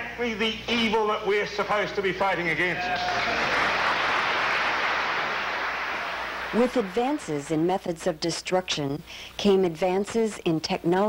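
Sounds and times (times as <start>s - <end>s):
large audience applauding: 2.6s - 7.6s.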